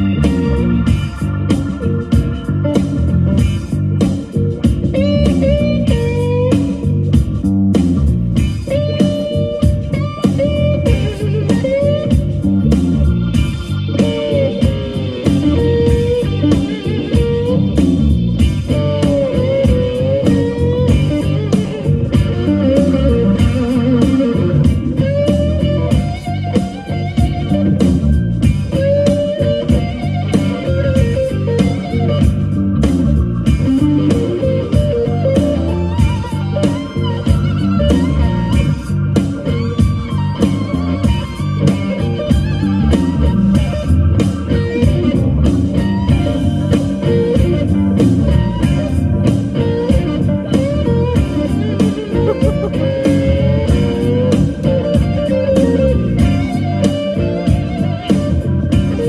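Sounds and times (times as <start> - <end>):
blues band playing: 0.0 - 59.0
electric guitar lead: 0.0 - 59.0.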